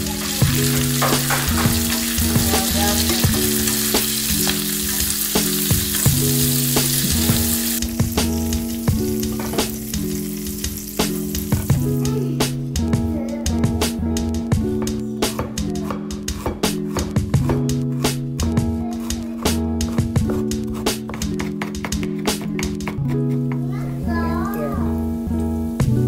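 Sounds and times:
leaves sizzling in hot oil: 0:00.0 - 0:11.8.

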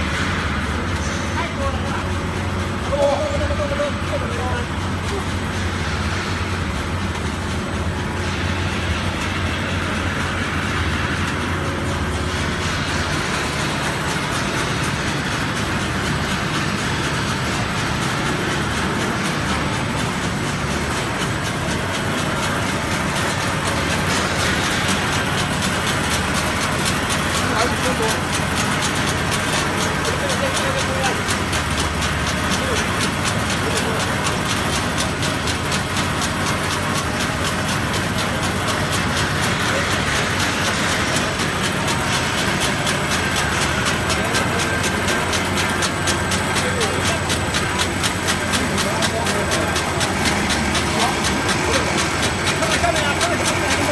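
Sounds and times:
conveyor machinery din: 0:00.0 - 0:53.9.

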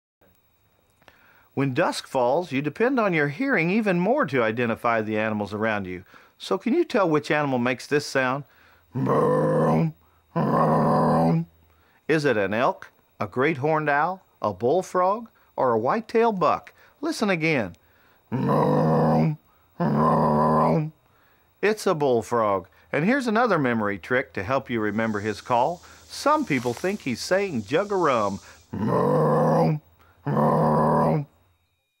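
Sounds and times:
bullfrog deep call: 0:08.6 - 0:11.6, 0:18.3 - 0:21.0, 0:24.7 - 0:31.7.

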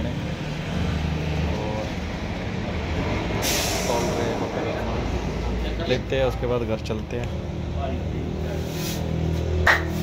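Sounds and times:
sudden hiss: 0:03.4 - 0:04.4.

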